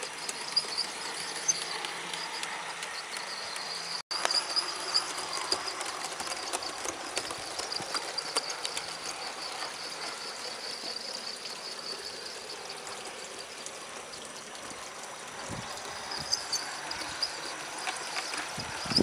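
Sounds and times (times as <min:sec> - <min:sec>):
model wagons rumbling on track: 0:00.0 - 0:19.0
wheels clicking over rail joints: 0:00.0 - 0:19.0.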